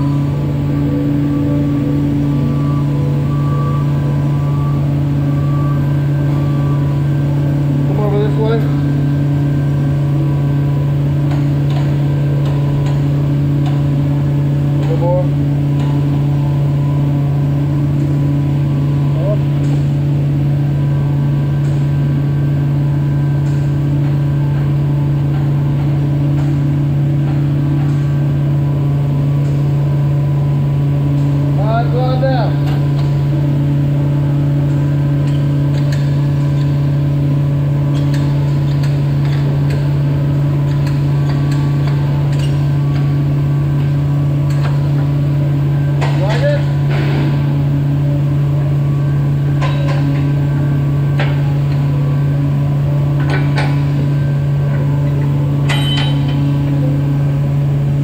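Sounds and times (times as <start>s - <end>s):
faint drone: 0.0s - 25.1s
loud low mechanical hum: 0.0s - 58.0s.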